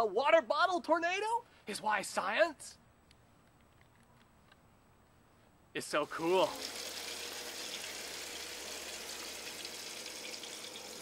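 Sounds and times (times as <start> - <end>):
water pouring between bottles: 6.0 - 11.0.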